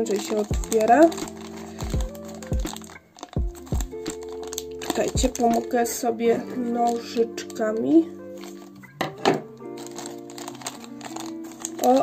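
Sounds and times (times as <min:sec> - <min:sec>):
plastic wrapper crinkling: 0:00.0 - 0:12.0
background music with bass beat: 0:00.5 - 0:04.2, 0:05.2 - 0:05.4.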